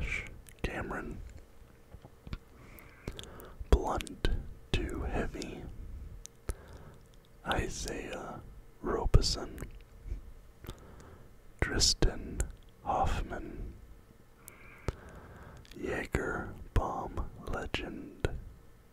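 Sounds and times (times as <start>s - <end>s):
man whispering: 0.0s - 1.4s, 2.8s - 5.8s, 6.5s - 10.2s, 11.6s - 13.8s, 15.6s - 18.5s
sharp little clicks: 0.0s - 5.6s, 14.4s - 15.8s.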